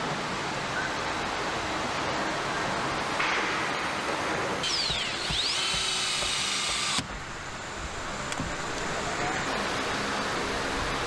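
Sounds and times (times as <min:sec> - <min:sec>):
factory noise: 0:00.0 - 0:11.0
power tool whine: 0:04.6 - 0:07.1.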